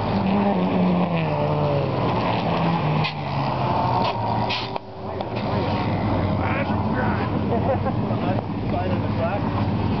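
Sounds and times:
car engines humming: 0.0s - 10.0s
people talking: 6.4s - 9.5s.

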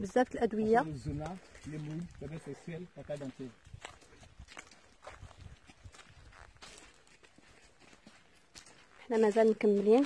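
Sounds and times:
footsteps on leaves and twigs: 0.1s - 10.0s.

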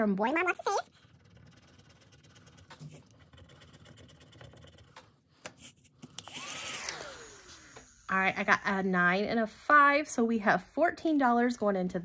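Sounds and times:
tool scratching a card: 0.8s - 6.3s
mini vacuum whirring: 5.8s - 8.6s.

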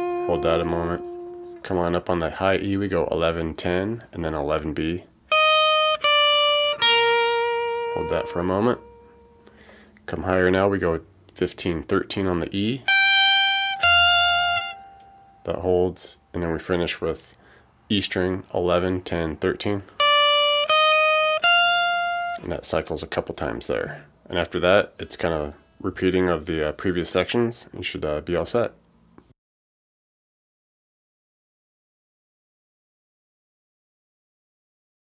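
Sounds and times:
electric guitar sustained notes: 0.0s - 1.7s, 5.3s - 9.8s, 12.9s - 15.6s, 20.0s - 22.5s.

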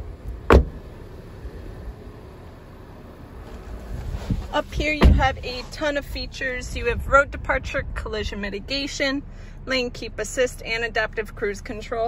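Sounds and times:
low rumbling handling noise: 0.0s - 12.0s
car door shutting: 0.2s - 1.4s, 3.4s - 6.0s
wind noise: 3.6s - 8.6s.

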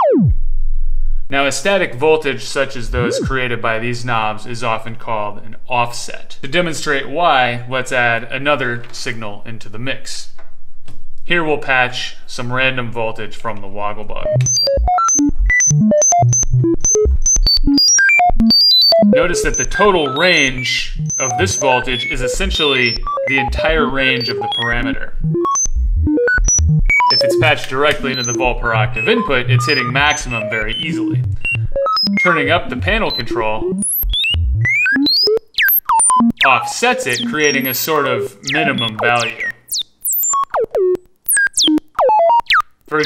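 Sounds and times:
clicks at pitch changes: 0.0s - 0.4s, 2.9s - 3.4s, 14.2s - 43.0s
synthesizer tones jumping in pitch: 0.0s - 0.4s, 2.9s - 3.4s, 14.2s - 42.7s.

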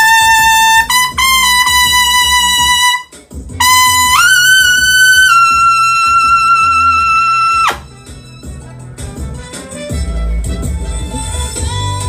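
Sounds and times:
trumpet high note: 0.0s - 7.9s
backing music with low bass: 0.0s - 12.0s.

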